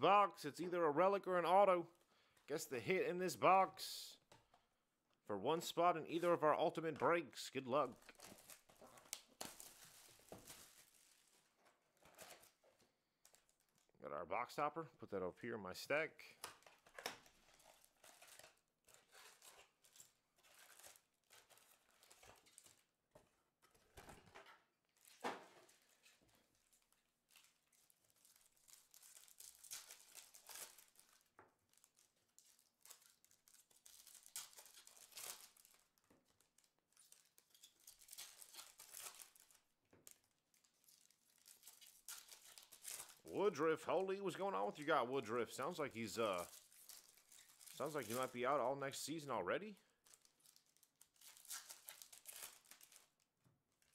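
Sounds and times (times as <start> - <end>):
wrapper crinkling and tearing: 7.8 - 13.9, 16.4 - 23.0, 24.9 - 44.3, 45.6 - 48.7, 49.8 - 53.9.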